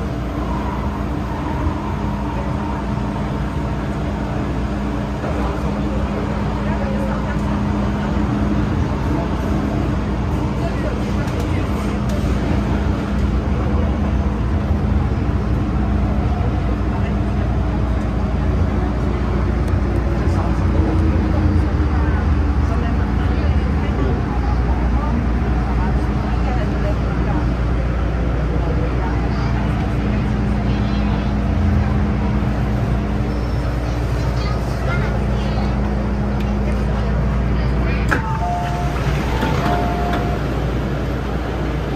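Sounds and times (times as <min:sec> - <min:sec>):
train steady hum: 0:00.0 - 0:41.9
train wheels rumbling on rails: 0:00.0 - 0:41.9.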